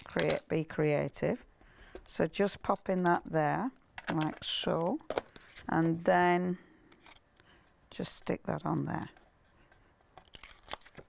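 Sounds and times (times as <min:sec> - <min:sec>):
paper crinkling: 0:09.0 - 0:11.0.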